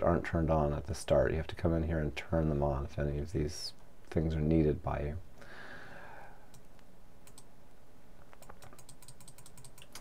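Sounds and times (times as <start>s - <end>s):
computer mouse clicks: 6.5s - 7.5s, 8.3s - 10.0s
scroll-wheel ticks: 7.2s - 7.5s, 8.4s - 10.0s.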